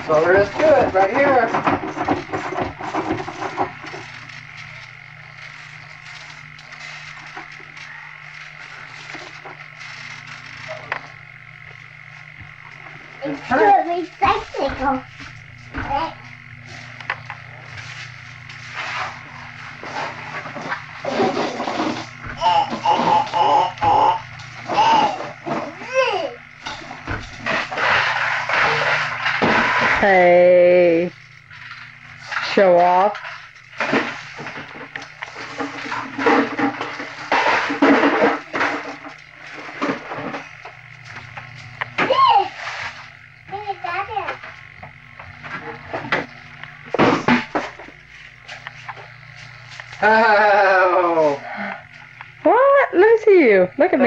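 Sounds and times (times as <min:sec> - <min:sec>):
low steady hum: 0:00.0 - 0:54.0
child squealing and babbling: 0:22.4 - 0:26.4.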